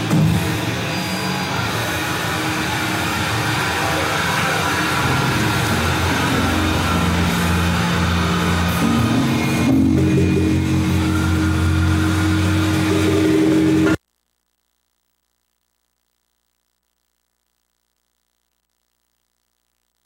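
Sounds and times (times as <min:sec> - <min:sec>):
metal band playing live: 0:00.0 - 0:14.0.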